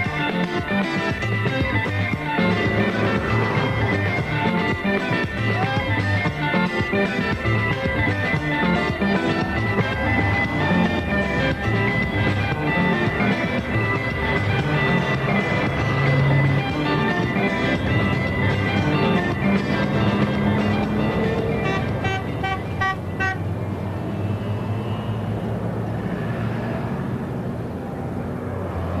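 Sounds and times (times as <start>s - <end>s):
rhumba band music: 0.0s - 23.4s.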